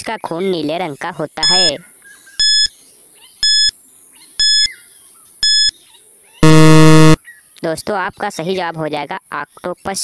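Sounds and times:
short high beeps: 1.4 - 1.7, 4.4 - 4.7, 5.4 - 5.7, 6.4 - 7.2
low buzzer: 6.4 - 7.2.

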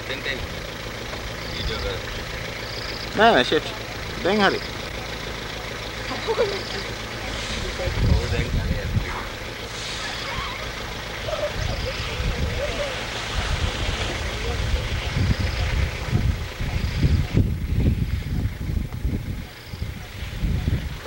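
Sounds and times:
vehicle engine running: 0.0 - 21.0
faint voices: 1.2 - 21.0
low rumbles on microphone: 7.3 - 9.6, 10.8 - 21.0.

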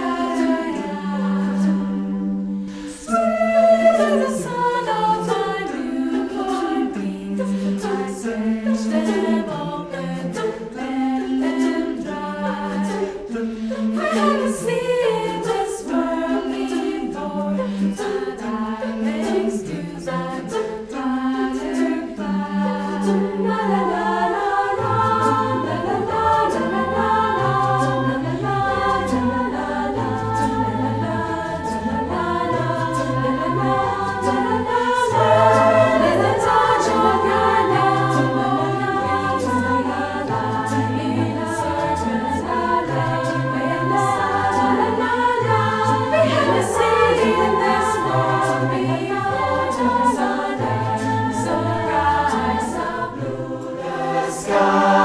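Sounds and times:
a cappella choir singing: 0.0 - 55.0.

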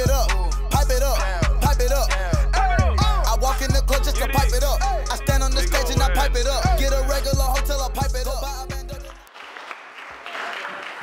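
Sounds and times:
rap track: 0.0 - 9.3
crowd clapping: 9.0 - 11.0.

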